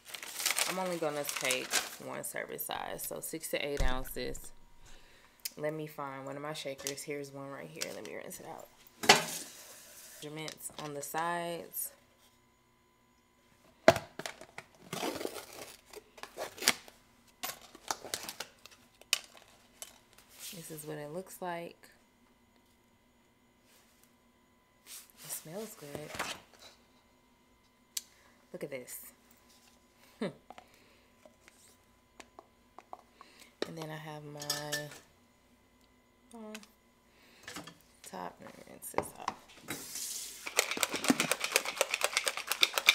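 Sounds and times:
plastic crinkling and rustling: 0.0 - 2.3, 14.2 - 20.2
plastic scoop and bottle clicking: 40.5 - 42.9.

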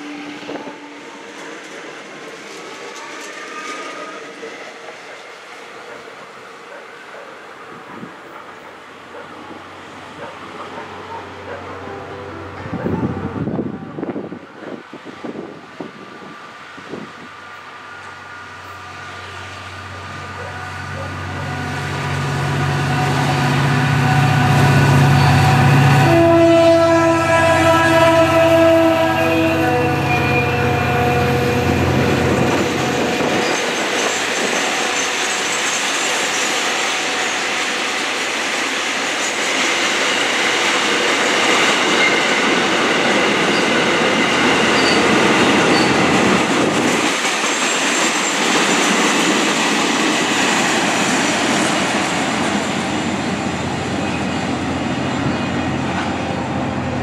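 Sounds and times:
multi-tone train horn: 0.0 - 1.4, 11.3 - 14.3, 18.6 - 35.6
diesel locomotive engine drone: 0.0 - 57.0
wheel squeal: 43.5 - 46.1.

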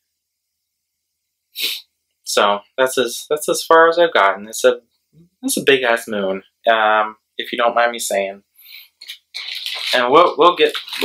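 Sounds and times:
sharp breath: 1.5 - 1.9, 8.6 - 9.0.

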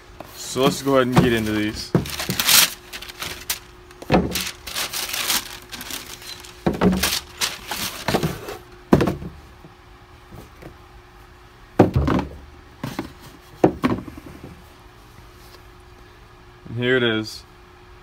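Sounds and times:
tissue paper rustling: 0.5 - 8.4
cardboard box being handled: 0.5 - 9.2
thuds and knocks on a box: 1.1 - 2.5, 4.0 - 4.5, 6.6 - 7.3, 8.0 - 9.4, 11.8 - 14.6.

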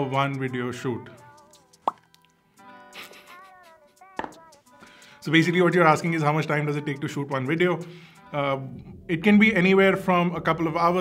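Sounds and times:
soft background music: 0.0 - 11.0
rising pop sound effect: 1.8 - 2.1.

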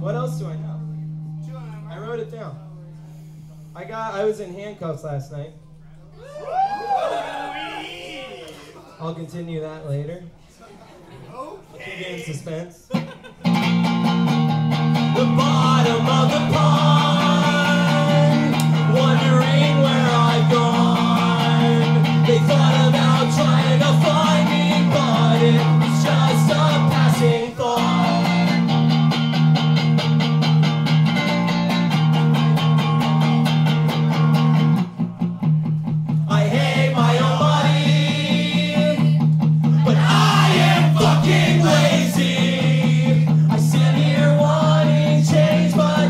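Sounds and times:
electric guitar strumming chords: 13.5 - 46.0
man singing: 15.1 - 28.5, 39.8 - 46.0.

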